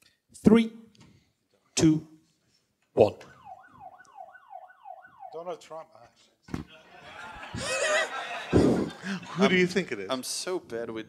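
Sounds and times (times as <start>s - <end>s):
electronic siren sound effect: 3.3s - 5.4s.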